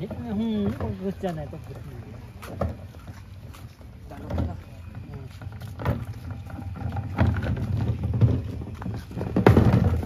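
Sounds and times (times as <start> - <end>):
wheelie bin rolling on concrete: 0.0 - 10.0.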